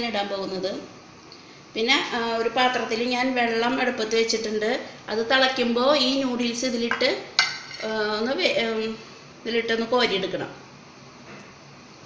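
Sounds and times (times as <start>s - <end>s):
woman talking: 0.0s - 0.9s, 1.8s - 10.6s.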